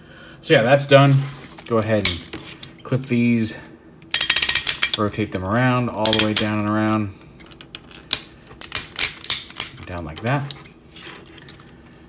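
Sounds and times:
plastic action figure joints clicking: 4.2 - 5.0, 6.0 - 6.5.

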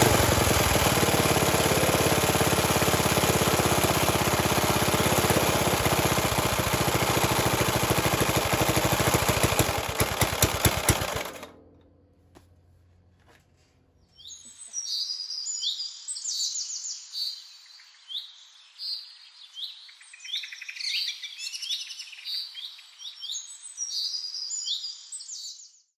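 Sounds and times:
songbirds singing: 14.0 - 25.8.

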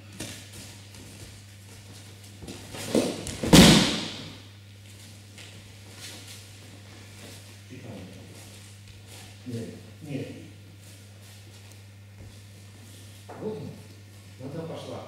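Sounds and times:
body thudding on mat: 2.4 - 4.4.

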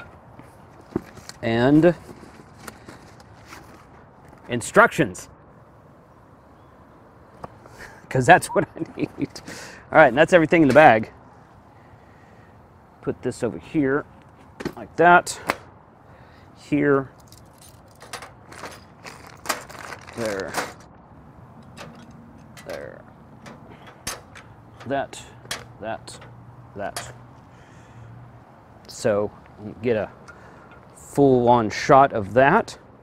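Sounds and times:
plastic bag crinkling: 19.0 - 20.5.

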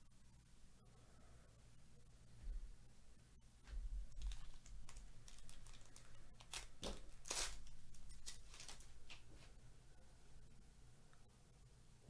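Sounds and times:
foil wrapper crinkling: 4.1 - 9.2.

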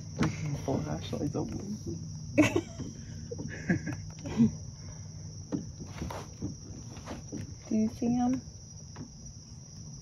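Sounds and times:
night insects chorus: 0.0 - 10.0
knocks from wooden boat: 0.1 - 0.6, 2.5 - 4.0, 5.4 - 7.7, 8.3 - 9.3.

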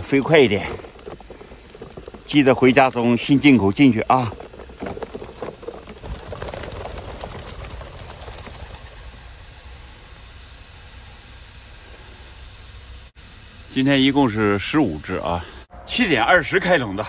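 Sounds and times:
pigeon wings flapping: 0.0 - 9.4.

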